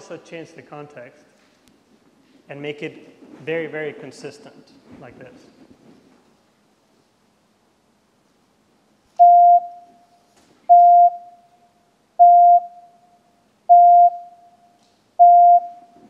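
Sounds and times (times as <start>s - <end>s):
electronic beeps: 9.2s - 10.0s, 10.7s - 11.4s, 12.2s - 12.9s, 13.7s - 14.4s, 15.2s - 15.9s.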